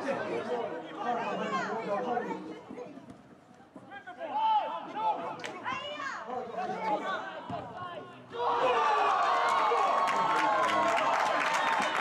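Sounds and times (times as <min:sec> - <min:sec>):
voices shouting and calling out: 0:03.8 - 0:09.6.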